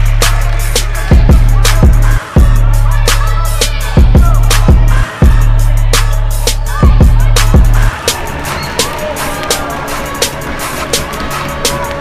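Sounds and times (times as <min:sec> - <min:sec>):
sneakers squeaking on floor: 0:07.9 - 0:12.0.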